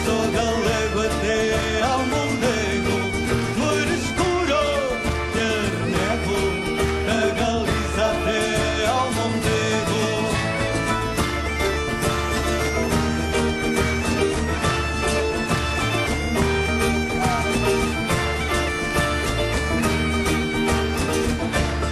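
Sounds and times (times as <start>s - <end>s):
drum beat: 0.0s - 21.9s
plucked mandolin: 0.0s - 21.9s
strummed acoustic guitars: 0.0s - 21.9s
bagpipe melody with drone: 9.3s - 21.9s.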